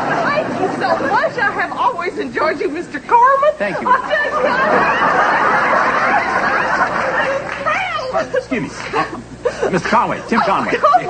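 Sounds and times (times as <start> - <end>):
studio audience laughing: 0.0 - 1.6, 3.7 - 8.2, 8.8 - 11.0.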